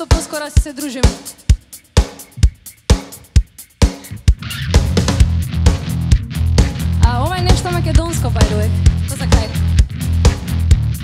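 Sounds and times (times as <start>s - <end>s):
drum kit beat: 0.0s - 11.0s
bass guitar: 2.3s - 11.0s.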